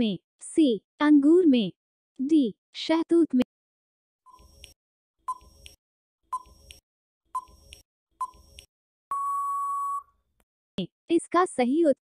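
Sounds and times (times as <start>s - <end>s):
long steady beep: 9.1s - 10.1s.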